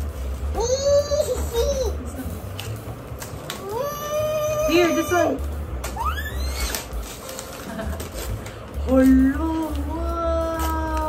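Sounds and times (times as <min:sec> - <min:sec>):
short rising squeal: 0:06.0 - 0:06.9
wrapping paper rustling and crinkling: 0:06.0 - 0:11.0.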